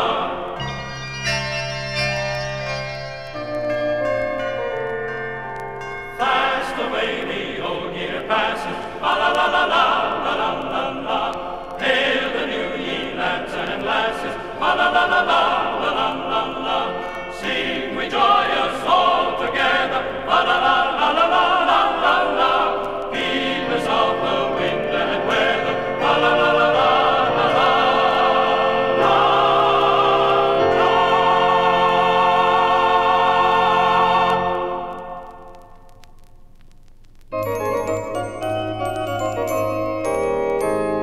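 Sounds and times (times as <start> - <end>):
choir singing a carol: 0.0 - 0.9, 6.1 - 35.3.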